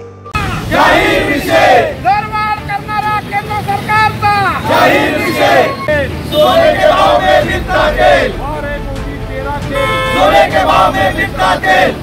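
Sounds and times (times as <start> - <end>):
vehicle horn tooting: 4.7 - 6.9, 9.7 - 11.3.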